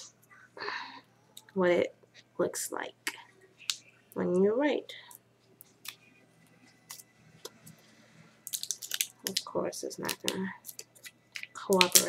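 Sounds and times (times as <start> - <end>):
paper wrapper crinkling: 8.4 - 12.0.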